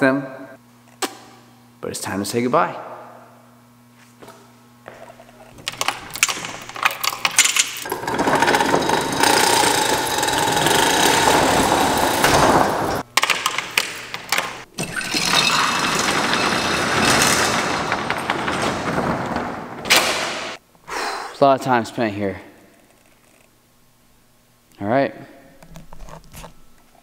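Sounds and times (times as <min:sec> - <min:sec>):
metal door slats clattering: 0:05.5 - 0:20.6
hoist chain rattling: 0:05.6 - 0:20.4.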